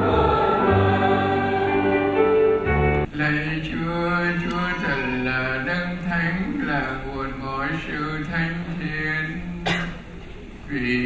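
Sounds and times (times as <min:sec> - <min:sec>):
man chanting a prayer: 0:03.1 - 0:09.5
sharp cough: 0:09.6 - 0:10.2.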